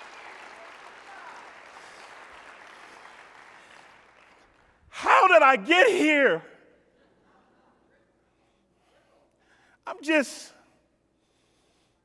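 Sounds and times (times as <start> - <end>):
audience applause: 0.0 - 4.7.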